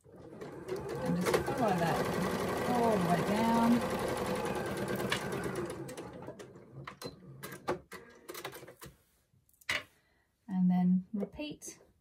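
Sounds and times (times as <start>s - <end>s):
sewing machine stitching: 0.0s - 8.8s.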